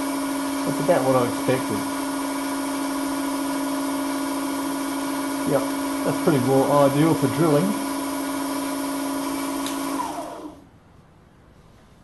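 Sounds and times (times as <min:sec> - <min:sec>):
electric motor humming: 0:00.0 - 0:10.6.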